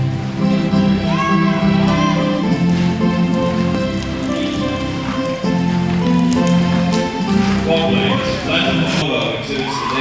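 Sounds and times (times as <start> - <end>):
music with held notes: 0.0 - 9.0.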